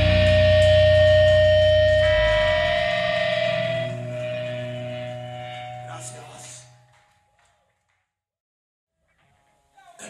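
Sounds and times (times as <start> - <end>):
bass and drums: 0.0 - 5.0
distorted electric guitars ringing: 0.0 - 6.9.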